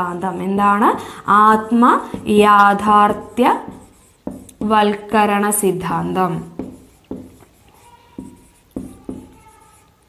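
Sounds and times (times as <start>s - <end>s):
marker writing on whiteboard: 0.7s - 10.0s
marker tip squeaking: 6.6s - 10.0s.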